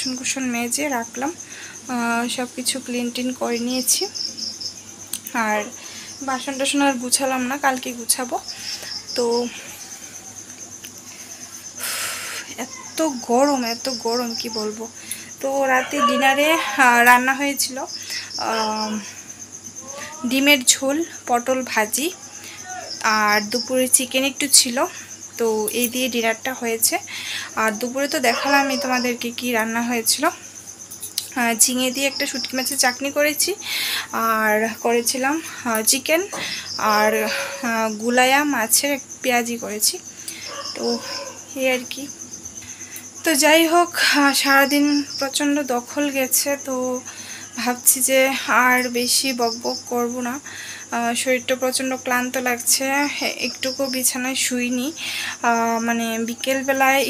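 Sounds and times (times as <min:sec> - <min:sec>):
woman speaking: 0:00.0 - 0:04.2, 0:05.2 - 0:09.8, 0:12.4 - 0:19.2, 0:19.8 - 0:30.4, 0:31.2 - 0:42.1, 0:43.2 - 0:57.0
woman's voice fragments: 0:00.0 - 0:04.4, 0:05.0 - 0:57.0
crickets chirping: 0:00.0 - 0:57.0.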